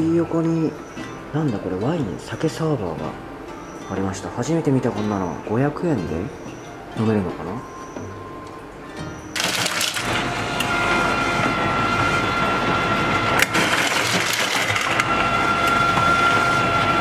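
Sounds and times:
ice dispenser machine running: 0:09.3 - 0:17.0
ice cubes clattering into bucket: 0:09.4 - 0:10.2, 0:13.4 - 0:15.1.

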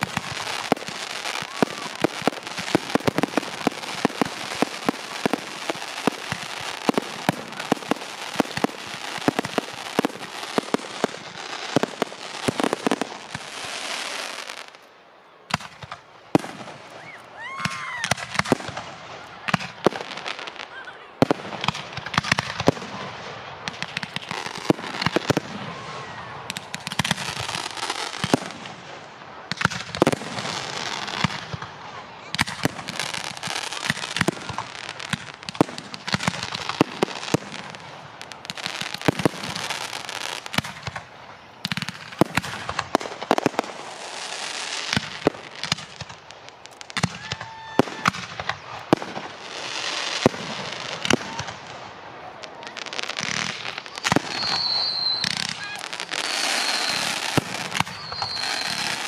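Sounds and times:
fireworks crackling: 0:00.0 - 0:59.0.

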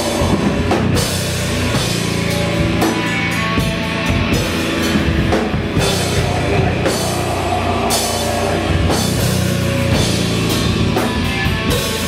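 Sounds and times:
drum kit with cymbals: 0:00.0 - 0:12.0
electric bass guitar: 0:00.0 - 0:12.0
rock band playing: 0:00.0 - 0:12.0.

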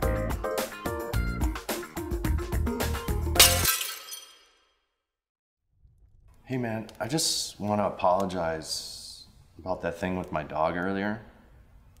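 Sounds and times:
soundtrack music with beat: 0:00.0 - 0:03.4
glass breaking and tinkling: 0:03.4 - 0:04.6.

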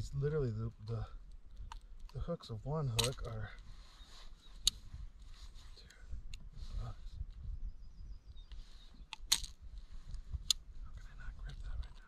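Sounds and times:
metal clicks of pliers and hooks: 0:02.9 - 0:03.4.

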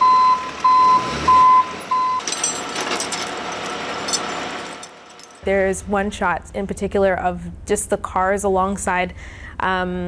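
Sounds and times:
truck warning beeper: 0:00.0 - 0:02.3.

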